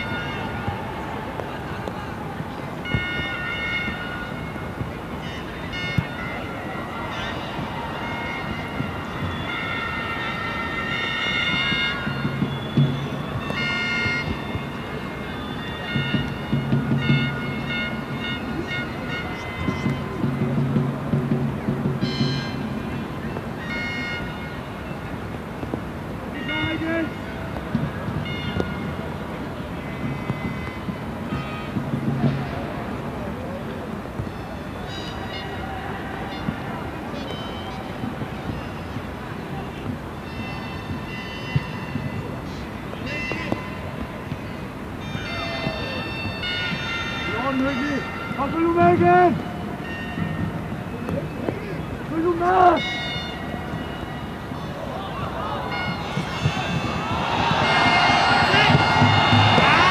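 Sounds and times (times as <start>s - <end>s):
stadium crowd noise: 0.0s - 59.9s.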